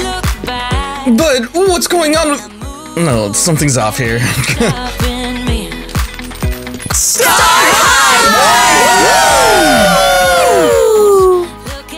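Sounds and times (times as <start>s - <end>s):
young people cheering and calling out: 7.0s - 11.5s.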